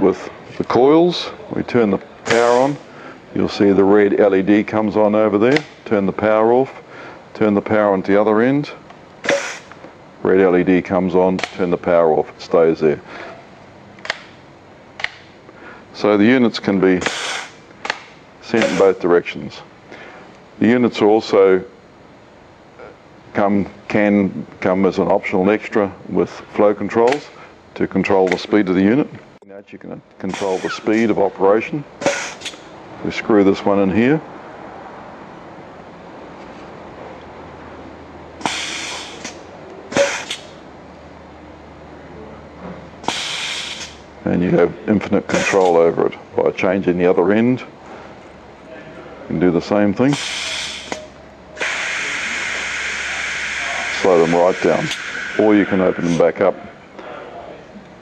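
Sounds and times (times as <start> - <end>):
compressed air hissing: 9.2 - 9.8, 17.0 - 17.6, 18.6 - 19.0, 30.3 - 31.0, 32.0 - 32.7, 38.4 - 40.6, 43.0 - 44.0, 50.1 - 56.3
low hiss: 49.3 - 57.9.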